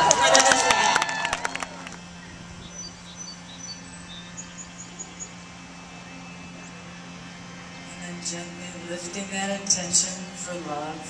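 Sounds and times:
steady low hum: 0.0s - 11.0s
high bird chirps: 2.2s - 5.4s.

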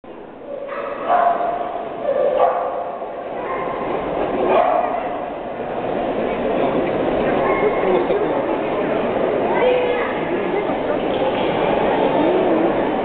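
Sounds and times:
dogs barking: 0.5s - 5.3s
people talking: 3.3s - 13.0s.

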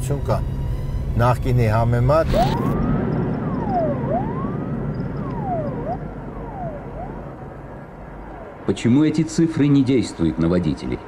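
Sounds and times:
siren wailing: 0.0s - 10.5s.

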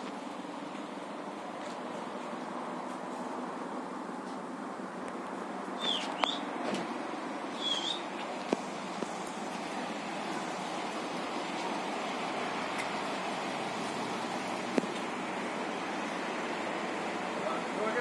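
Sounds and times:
outdoor background hiss: 0.0s - 18.0s.

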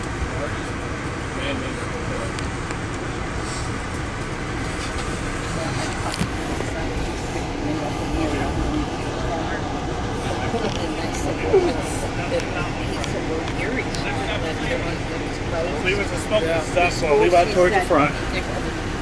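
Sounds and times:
faint passenger voices: 0.0s - 19.0s
train rumbling and rushing: 0.0s - 19.0s.

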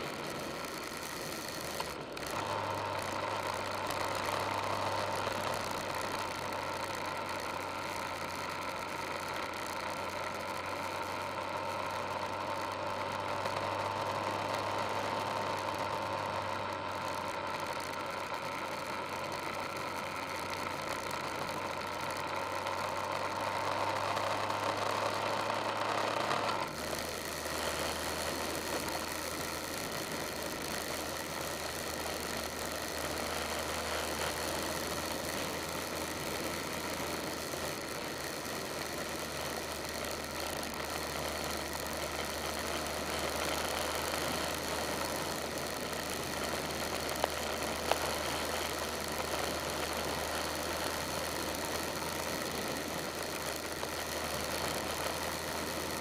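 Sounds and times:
vehicle engine hum: 0.0s - 56.0s.

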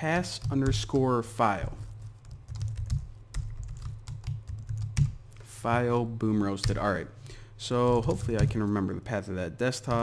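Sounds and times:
keyboard typing: 1.7s - 5.4s.

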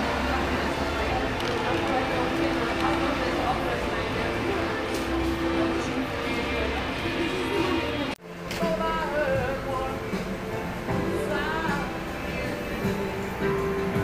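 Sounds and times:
indistinct voices: 0.0s - 14.0s.

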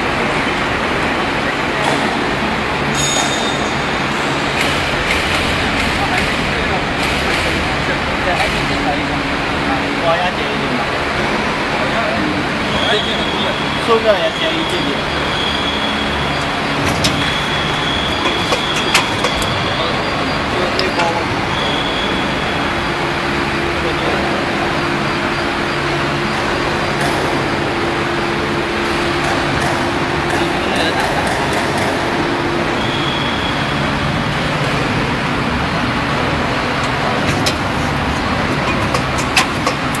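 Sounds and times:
machine running with whine: 0.0s - 40.0s.

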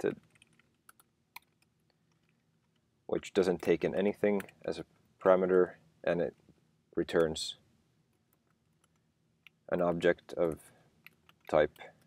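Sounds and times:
person speaking: 0.0s - 0.4s, 3.1s - 7.7s, 9.6s - 12.0s.

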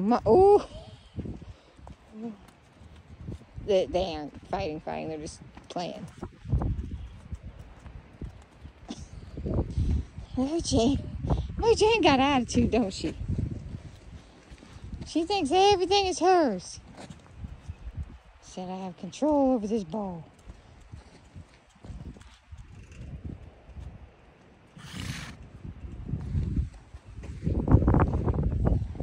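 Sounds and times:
hooves scuffling on dirt: 0.0s - 29.0s.

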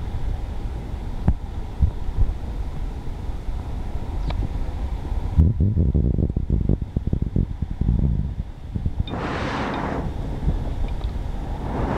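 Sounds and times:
wind buffeting microphone: 0.1s - 11.9s
rushing hiss: 9.1s - 11.9s.

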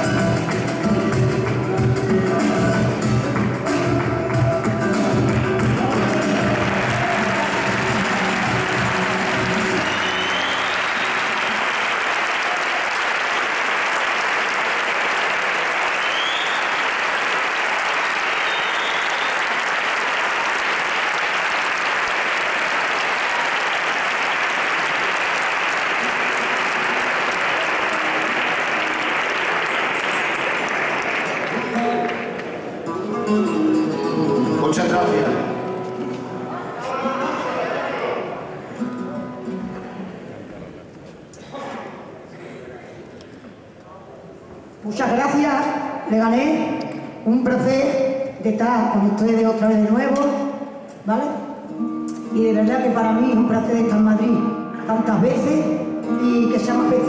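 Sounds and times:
flamenco guitar and singing: 0.0s - 11.8s, 25.8s - 29.5s, 31.2s - 40.4s, 47.6s - 57.0s
audience applauding: 0.0s - 33.1s.

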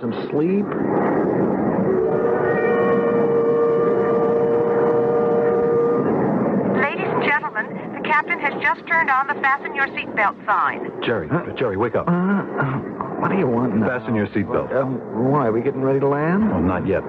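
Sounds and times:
jet airliner cabin drone: 0.0s - 17.0s.

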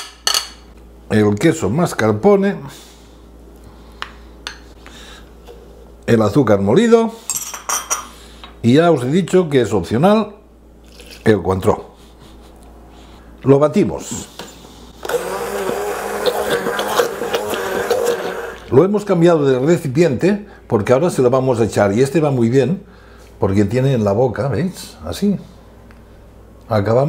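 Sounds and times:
stick blender motor hum: 15.0s - 18.7s.

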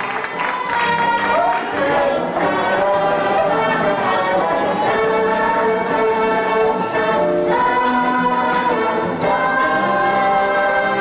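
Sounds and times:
orchestral ballroom music: 0.0s - 11.0s.

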